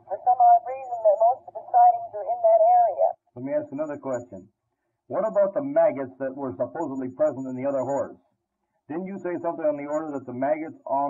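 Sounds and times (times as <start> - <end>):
muffled voice on old recording: 0.0 - 4.4, 5.1 - 8.2, 8.9 - 11.0.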